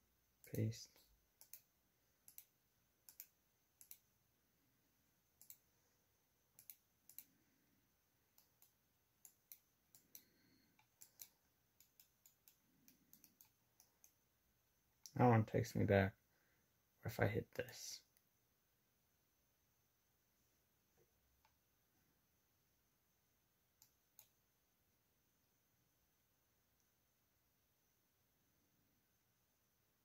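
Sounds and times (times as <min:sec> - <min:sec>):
computer mouse clicks: 0:00.4 - 0:04.1, 0:05.4 - 0:05.7, 0:06.5 - 0:07.4, 0:08.3 - 0:14.2, 0:23.8 - 0:24.4.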